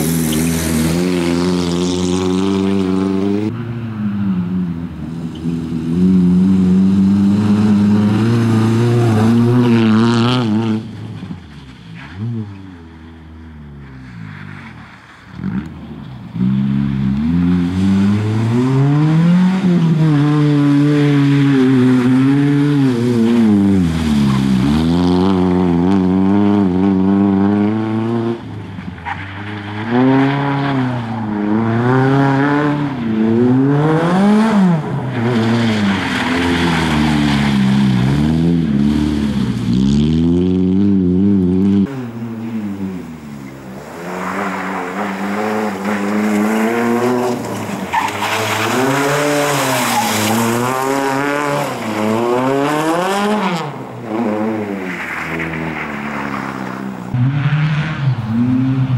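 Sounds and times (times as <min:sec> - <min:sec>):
rally car engine revving: 0:00.0 - 0:58.9
tyres on gritty surface: 0:41.8 - 0:57.1.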